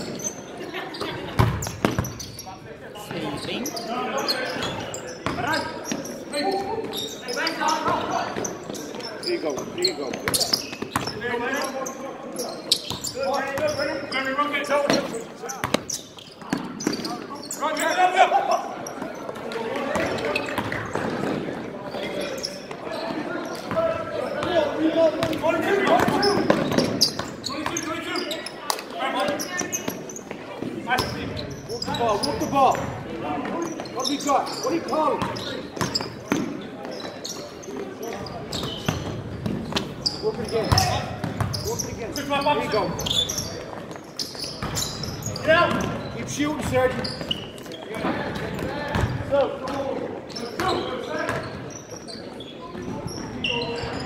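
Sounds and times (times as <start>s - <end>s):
basketball bouncing on wooden floor: 40.7s - 41.6s.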